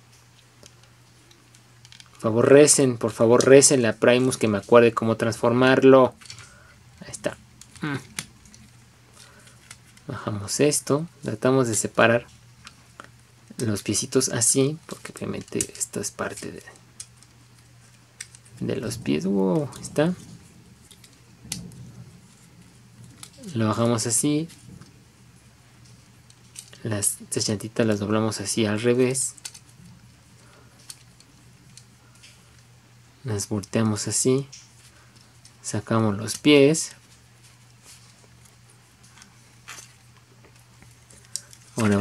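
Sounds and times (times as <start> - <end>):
low steady hum: 0.0 - 42.0
toy handling noise: 0.2 - 42.0
plastic parts clicking: 0.6 - 2.2, 14.8 - 18.6, 26.2 - 26.8, 29.1 - 32.7, 39.0 - 42.0.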